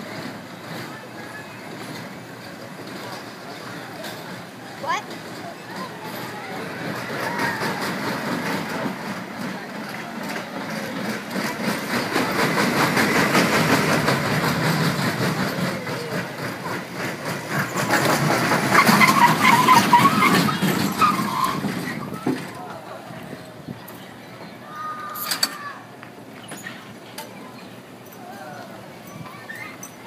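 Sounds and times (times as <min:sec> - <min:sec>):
roller coaster rattling on track: 0:00.0 - 0:30.0.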